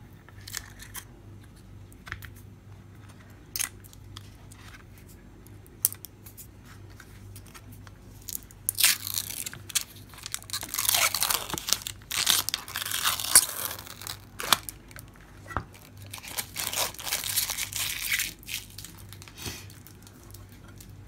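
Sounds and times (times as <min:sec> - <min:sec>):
plastic film crackling and tearing: 0:08.3 - 0:21.0.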